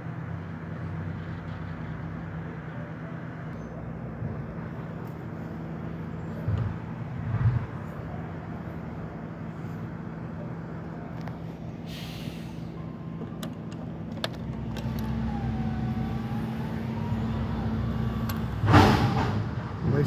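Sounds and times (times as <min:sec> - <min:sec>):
garbage truck engine running: 0:00.0 - 0:20.0.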